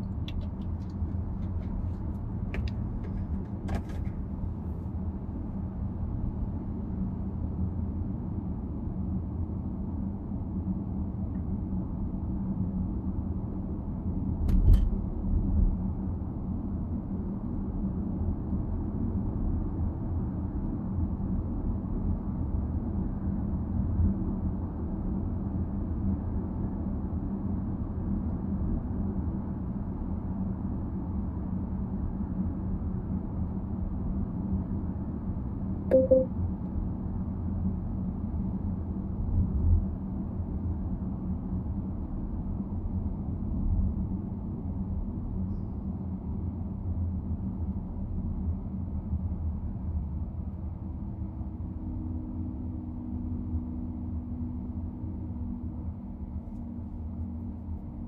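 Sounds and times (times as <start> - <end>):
car cabin road rumble: 0.0 - 5.4
short beep: 35.9 - 36.3.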